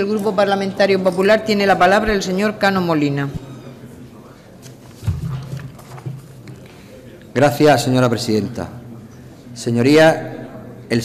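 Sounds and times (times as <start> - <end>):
footsteps: 4.7 - 6.9.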